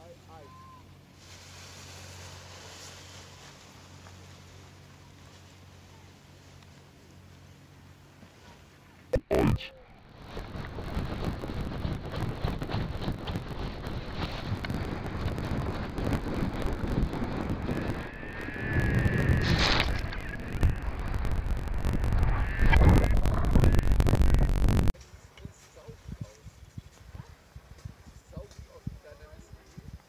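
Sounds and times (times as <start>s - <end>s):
wind buffeting microphone: 10.0s - 24.9s.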